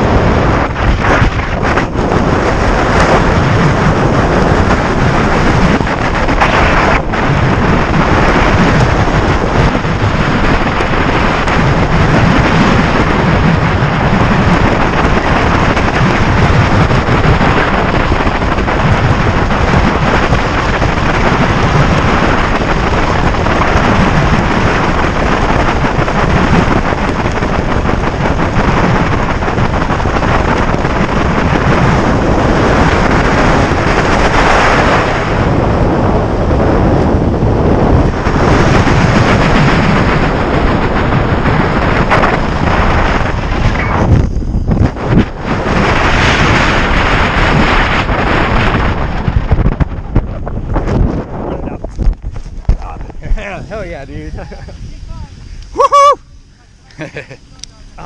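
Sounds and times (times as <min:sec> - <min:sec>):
wind noise on microphone: 0:00.0 - 0:58.0.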